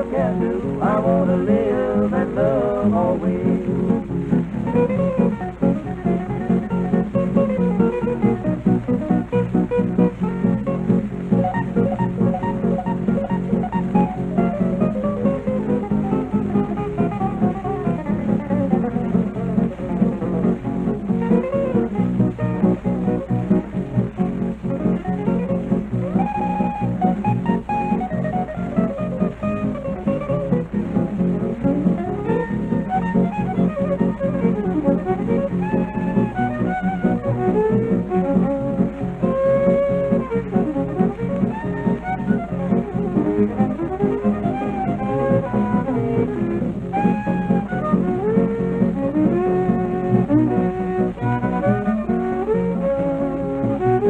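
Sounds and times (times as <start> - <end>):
acoustic guitar rhythm: 0.0 - 54.0
electric guitar: 0.0 - 54.0
fiddle melody: 0.0 - 54.0.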